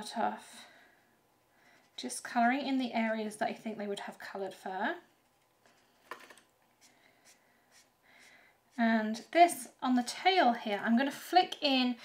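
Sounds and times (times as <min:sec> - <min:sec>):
marker scratching on card: 0:06.8 - 0:08.3.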